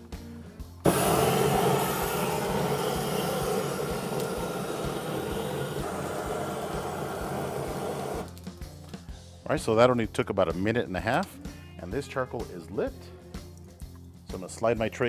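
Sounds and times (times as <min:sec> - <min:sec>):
propane torch rushing: 0:00.8 - 0:08.5.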